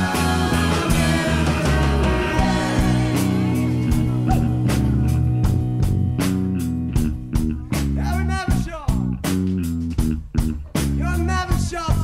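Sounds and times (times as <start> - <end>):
bass line: 0.0 - 12.0
drum beat: 0.0 - 12.0
guitar: 0.0 - 12.0.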